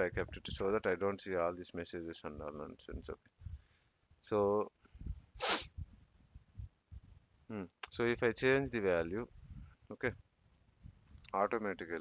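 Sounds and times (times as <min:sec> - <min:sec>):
sharp breath through nose: 0:05.0 - 0:05.8.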